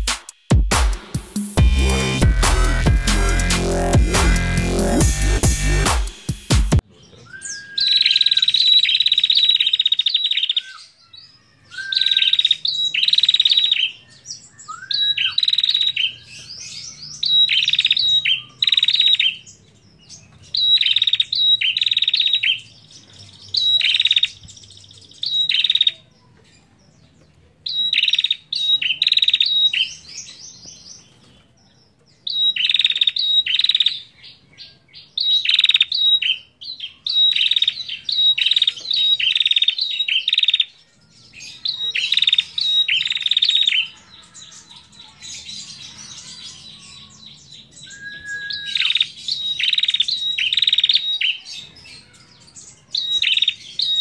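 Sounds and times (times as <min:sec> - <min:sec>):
bird chirping rapidly: 0:00.0 - 0:11.0, 0:11.6 - 0:26.1, 0:27.6 - 0:31.2, 0:32.2 - 0:34.4, 0:35.0 - 0:40.7, 0:41.4 - 0:44.0, 0:45.6 - 0:52.1, 0:52.9 - 0:54.0.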